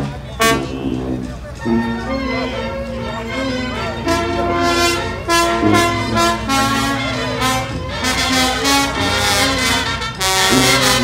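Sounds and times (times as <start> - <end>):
brass band playing: 0.0 - 11.0.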